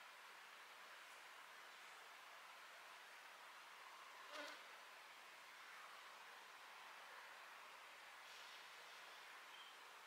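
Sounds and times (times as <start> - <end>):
faint steady hiss: 0.0 - 10.0
flying insect buzz: 4.2 - 4.8.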